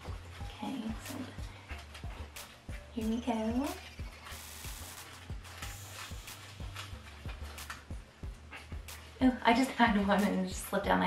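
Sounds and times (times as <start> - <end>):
paper slips rustling: 3.7 - 7.9.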